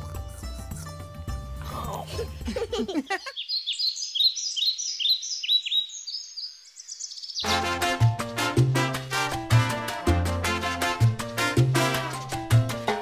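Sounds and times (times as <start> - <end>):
bird chirping: 3.1 - 7.5
latin music with brass: 7.4 - 13.0.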